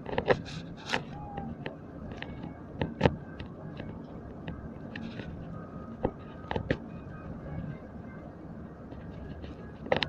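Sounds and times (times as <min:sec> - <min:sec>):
vehicle rumble from inside cabin: 0:00.0 - 0:10.0.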